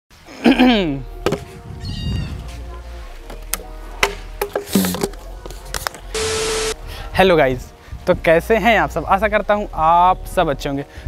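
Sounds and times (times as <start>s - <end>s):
man clearing throat: 0.4s - 1.0s.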